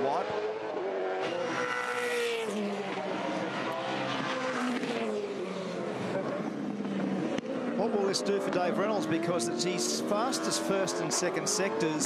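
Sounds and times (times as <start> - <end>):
race car engine at speed: 0.0 - 12.0.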